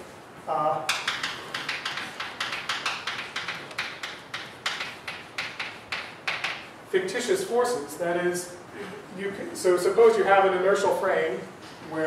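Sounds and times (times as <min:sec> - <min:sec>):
chalk writing on a blackboard: 0:00.9 - 0:06.7.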